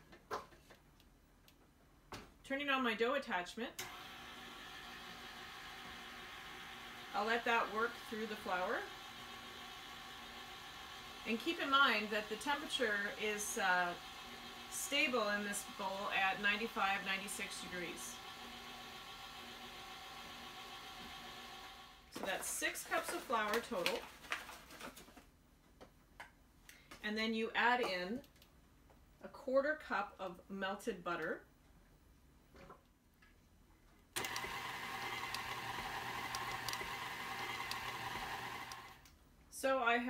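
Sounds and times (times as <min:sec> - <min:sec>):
stand mixer motor hum: 0:03.8 - 0:22.0, 0:34.2 - 0:39.0.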